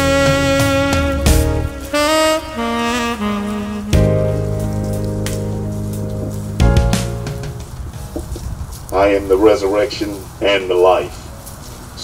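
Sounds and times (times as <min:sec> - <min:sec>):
saxophone holding low note: 0:00.0 - 0:07.6.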